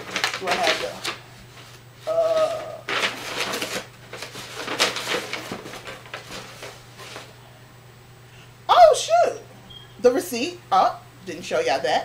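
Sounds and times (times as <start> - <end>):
paper rustling and crinkling: 0.0 - 7.4
low electrical hum: 0.0 - 12.0.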